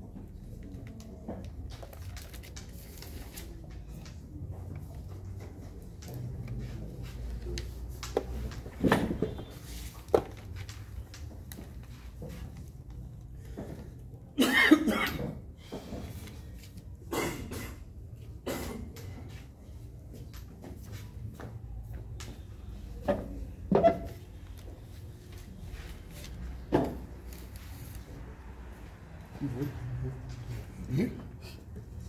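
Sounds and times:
person coughing: 14.4s - 15.4s, 17.1s - 17.8s, 18.4s - 19.0s.

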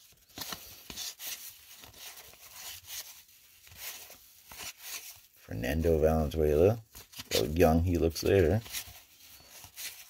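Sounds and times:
cards scraping swishes: 0.0s - 10.0s.

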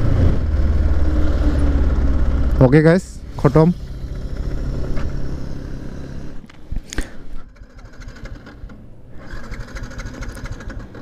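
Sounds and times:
motorcycle engine running: 0.0s - 6.4s, 7.4s - 8.7s, 9.3s - 11.0s
electric starter whirring: 7.4s - 11.0s.

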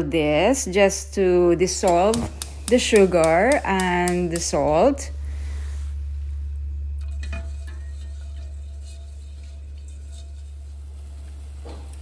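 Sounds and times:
gas burner hum: 0.0s - 12.0s.

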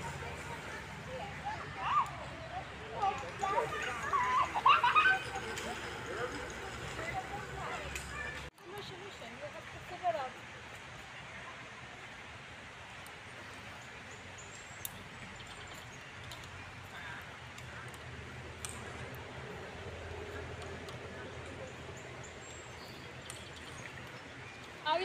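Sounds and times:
steady outdoor background noise: 0.0s - 25.0s.

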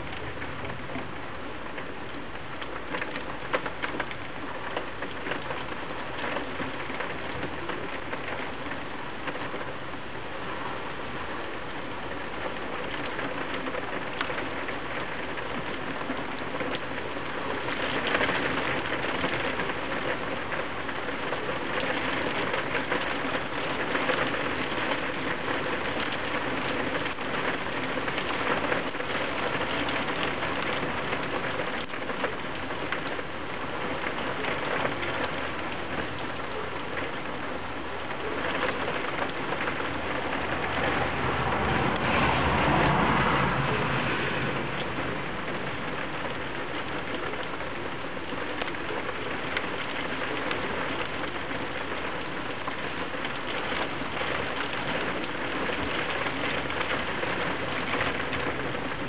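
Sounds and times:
heavy rain on glass: 0.0s - 59.0s
passing vehicle: 40.1s - 46.1s.

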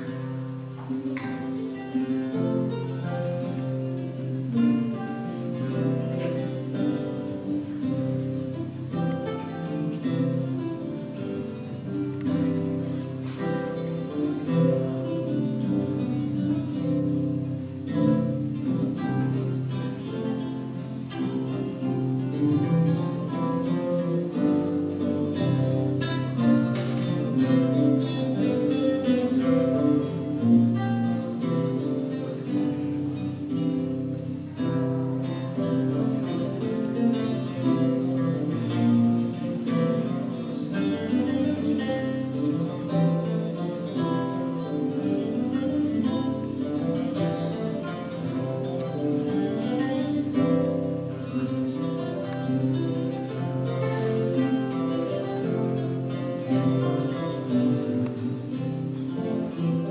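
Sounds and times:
lute duet plucked notes: 0.0s - 59.9s.

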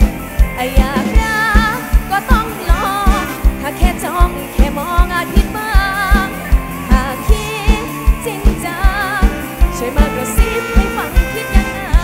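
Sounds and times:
live pop band: 0.0s - 12.0s
woman singing: 0.0s - 12.0s.

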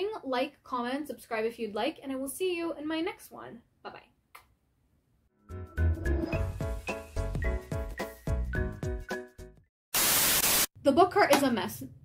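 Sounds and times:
woman speaking: 0.0s - 4.2s, 10.8s - 12.0s
outro music: 5.4s - 9.3s
burst of static hiss: 10.0s - 10.8s.

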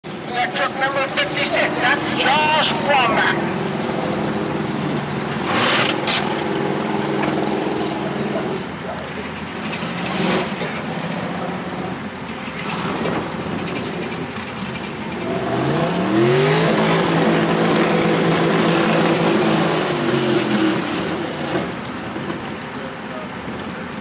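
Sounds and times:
buggy engine revving: 0.2s - 24.0s.

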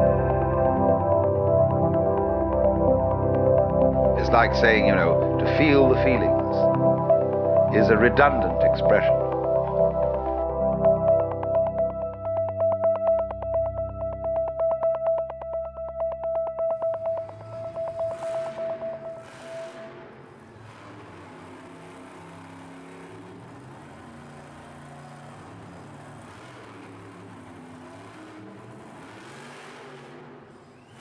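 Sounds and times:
pulsing synthesizer tone: 0.0s - 20.4s
low vehicle rumble: 0.0s - 30.5s
noisy arena ambience: 16.8s - 31.0s.

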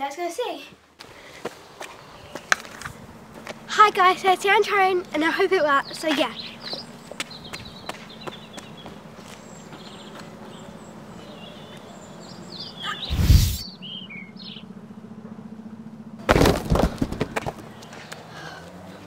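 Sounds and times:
birds chirping: 1.6s - 15.1s
low hum: 13.0s - 13.9s.

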